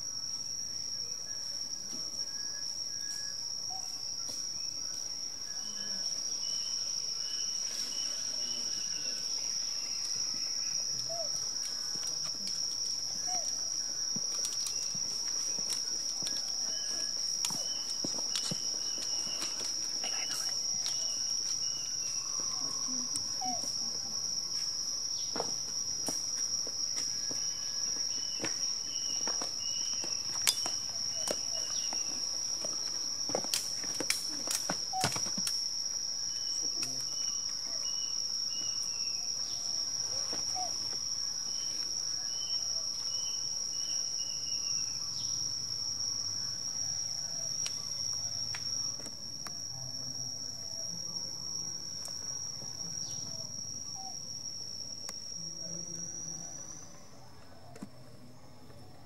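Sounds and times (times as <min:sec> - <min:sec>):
short insect chirps: 0:00.0 - 0:25.4, 0:27.2 - 0:49.7
insect high-pitched buzz: 0:00.0 - 0:59.0.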